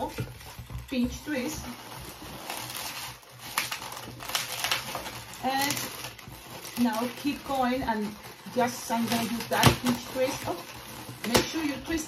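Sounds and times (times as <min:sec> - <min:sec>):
balloons rubbing together: 0:00.0 - 0:12.0.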